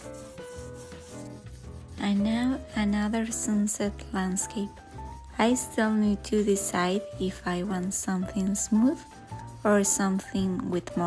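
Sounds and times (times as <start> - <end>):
paintbrush scrubbing canvas: 0.0 - 11.0
soft background music: 0.0 - 11.0.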